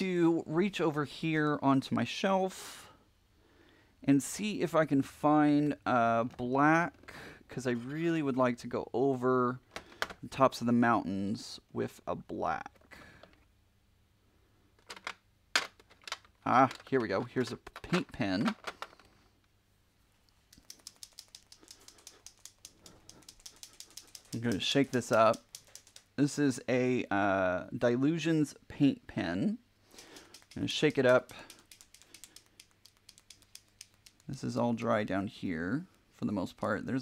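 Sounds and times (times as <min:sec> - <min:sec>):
plastic art supplies clicking: 0:14.8 - 0:19.2, 0:20.6 - 0:26.2, 0:30.0 - 0:34.4
paint pen ball rattling: 0:20.5 - 0:26.2, 0:29.9 - 0:34.4.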